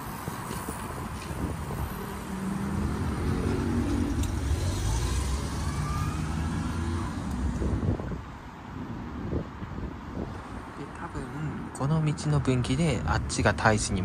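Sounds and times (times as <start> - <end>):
vehicle engine rumble passing: 0.0 - 8.3.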